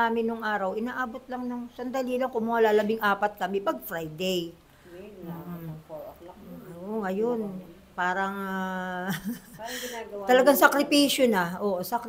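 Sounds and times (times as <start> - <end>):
woman talking softly: 4.9 - 7.8.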